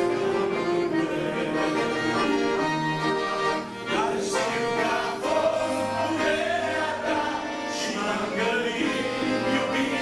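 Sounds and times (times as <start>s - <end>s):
accordions playing a hymn: 0.0s - 10.0s
men singing together: 1.0s - 2.1s, 3.9s - 10.0s.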